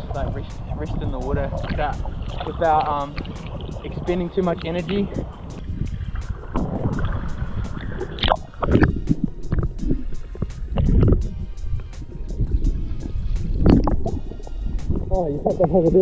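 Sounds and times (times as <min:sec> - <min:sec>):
sea water sloshing: 0:00.0 - 0:15.7
background music: 0:00.0 - 0:16.0
heavy water splashing: 0:00.0 - 0:16.0
muffled underwater rumble: 0:00.0 - 0:16.0.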